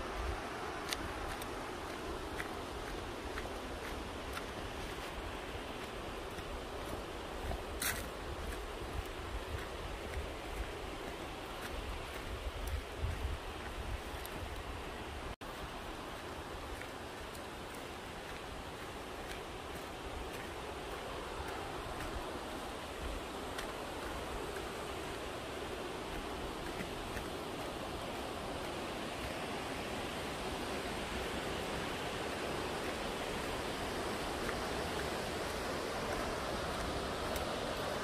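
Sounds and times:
footsteps on dirt trail: 0:00.0 - 0:38.0
waterfall rushing: 0:14.9 - 0:38.0.

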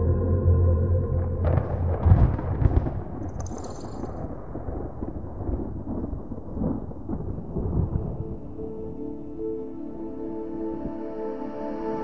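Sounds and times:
ambient music tones: 0:00.0 - 0:03.2, 0:06.6 - 0:12.0
low rumbling noise: 0:00.0 - 0:11.0.

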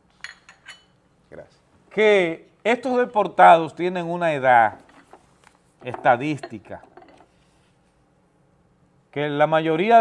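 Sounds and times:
cups and saucers clinking: 0:00.2 - 0:01.0, 0:05.8 - 0:07.4.

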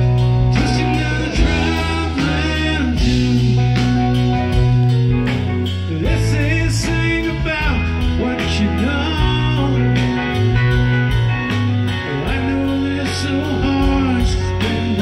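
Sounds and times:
bass guitar: 0:00.0 - 0:15.0
drum kit with cymbals: 0:00.0 - 0:15.0
electric guitar: 0:00.0 - 0:15.0
organ: 0:00.0 - 0:15.0.

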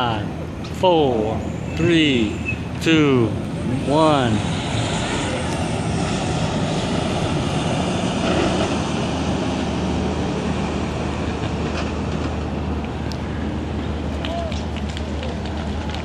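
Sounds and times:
diesel truck engine drone: 0:00.0 - 0:16.0
tyre and road noise: 0:00.0 - 0:16.0.

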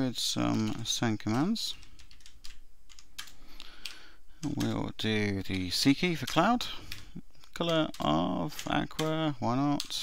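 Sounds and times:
typing on computer keyboard: 0:00.5 - 0:10.0.

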